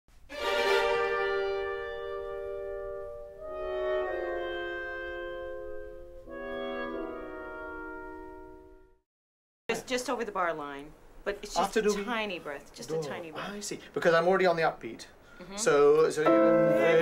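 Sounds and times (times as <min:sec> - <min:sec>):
orchestral held chords: 0:00.3 - 0:09.0, 0:16.2 - 0:17.0.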